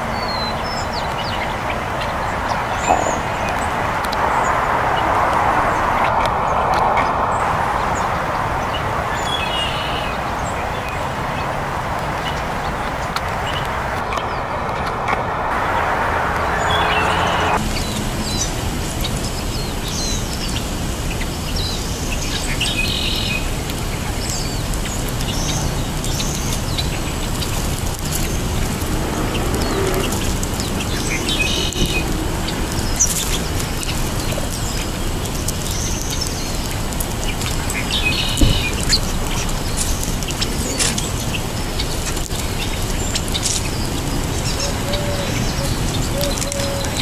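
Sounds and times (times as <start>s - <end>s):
songbirds chirping: 0.0s - 47.0s.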